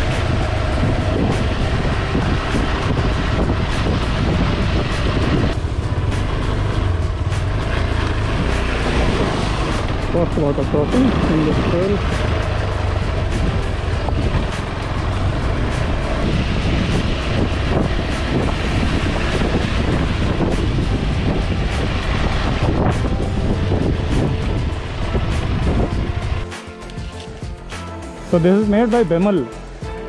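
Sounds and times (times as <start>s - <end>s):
wind buffeting microphone: 0.0s - 26.5s
motorcycle engine running: 0.0s - 27.8s
background music: 0.0s - 30.0s.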